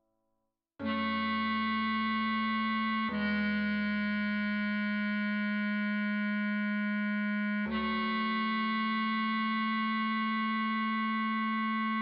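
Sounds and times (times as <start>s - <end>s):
bass clarinet long note: 0.8s - 12.0s.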